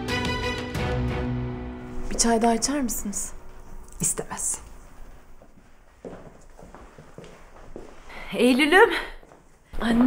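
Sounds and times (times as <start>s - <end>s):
quiet footsteps: 1.9s - 10.0s.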